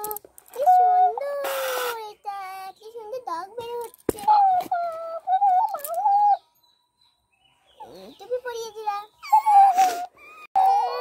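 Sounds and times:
child's voice: 0.0s - 6.4s, 7.8s - 11.0s
high wavering voice: 4.2s - 6.5s, 7.8s - 11.0s.

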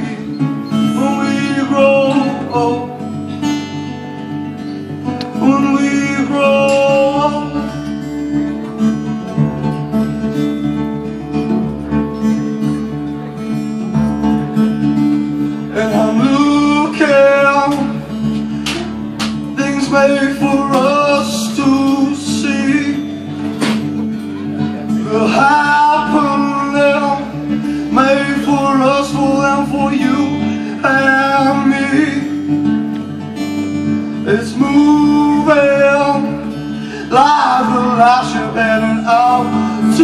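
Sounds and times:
man singing: 0.0s - 4.0s, 5.0s - 8.7s, 15.4s - 40.0s
strummed acoustic guitar: 0.0s - 40.0s.

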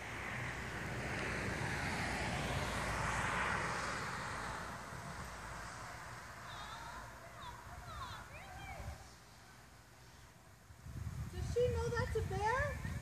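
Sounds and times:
car passing by: 0.0s - 10.2s.

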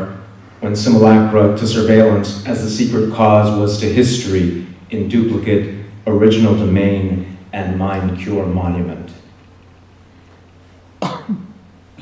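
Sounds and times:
steady low hum: 0.0s - 12.0s
man clearing his throat: 11.0s - 11.6s.

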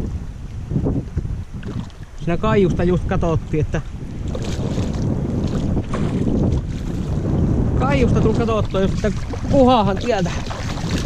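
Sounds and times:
wind buffeting microphone: 0.0s - 11.0s
water lapping around boat: 1.4s - 2.2s, 4.2s - 7.4s, 8.3s - 11.0s.

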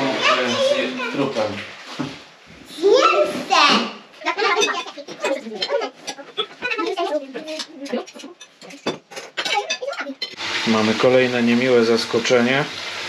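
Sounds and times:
children chattering: 0.0s - 1.4s, 2.7s - 8.8s
forks clinking on plates: 4.4s - 10.4s.

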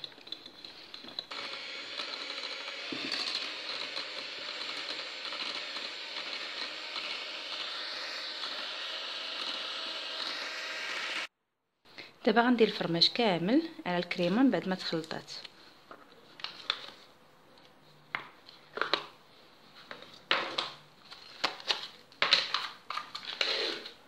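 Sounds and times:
electric hand mixer whirring: 1.2s - 11.3s.

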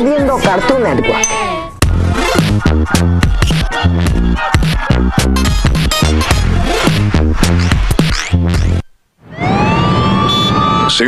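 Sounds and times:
siren wail: 9.2s - 11.0s.

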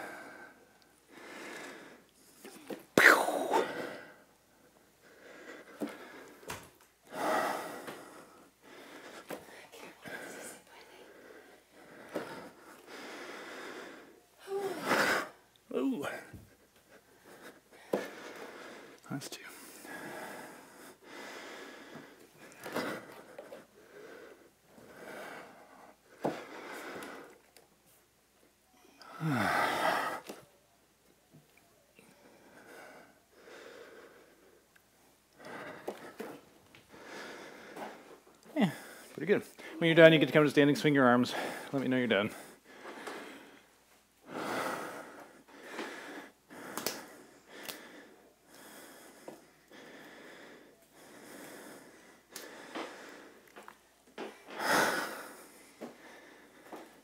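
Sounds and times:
heavy breathing: 0.0s - 27.5s, 29.0s - 30.5s, 32.0s - 57.0s
man breathing out heavily: 7.1s - 15.4s, 29.0s - 30.4s, 42.4s - 53.5s.

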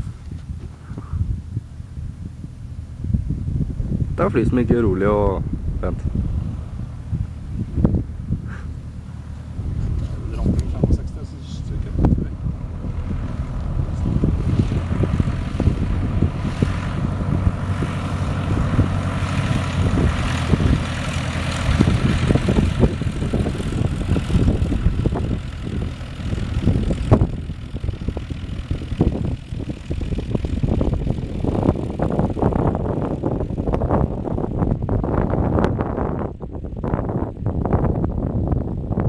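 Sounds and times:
small plane engine and propeller: 0.0s - 39.0s
wind gusting on microphone: 0.0s - 39.0s.

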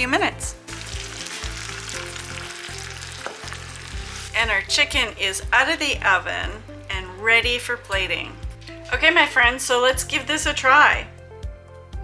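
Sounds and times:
soft background music: 0.0s - 12.0s
fat sizzling in pan: 0.6s - 4.6s.

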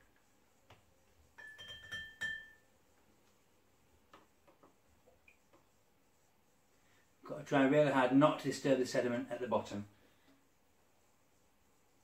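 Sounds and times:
tube clinking on glass jug: 1.4s - 2.6s.

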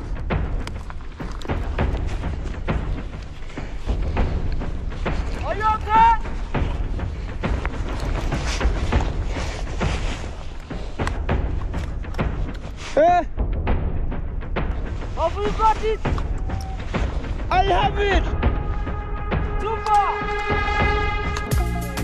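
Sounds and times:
microphone handling rustle: 0.0s - 13.0s
wind rumbling on microphone: 0.0s - 21.5s
people shouting calls: 5.4s - 6.5s, 15.2s - 21.2s.

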